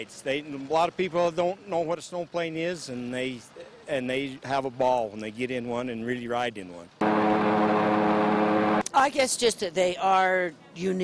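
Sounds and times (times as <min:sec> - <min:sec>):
propeller engine running: 0:07.0 - 0:08.8.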